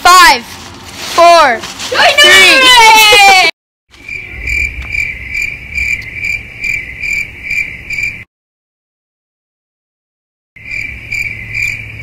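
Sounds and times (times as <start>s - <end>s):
cricket chirping: 4.0s - 8.3s, 10.6s - 12.0s.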